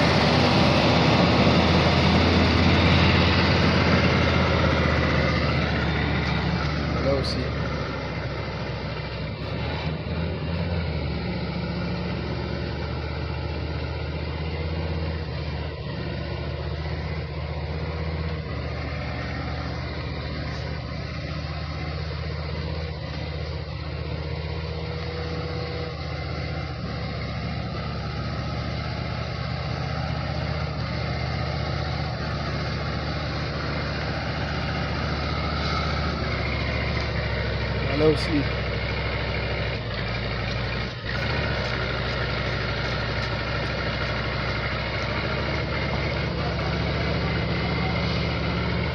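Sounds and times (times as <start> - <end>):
truck engine running: 0.0 - 48.9.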